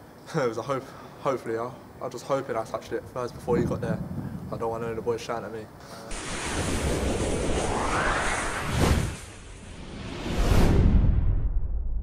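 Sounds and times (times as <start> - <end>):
rising whoosh sweep: 6.1 - 11.8.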